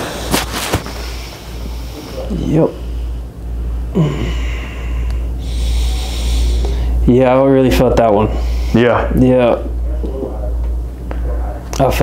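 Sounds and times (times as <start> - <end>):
heavy breathing: 0.0 - 7.1, 8.1 - 9.2
man's laughing grunt: 3.9 - 4.8.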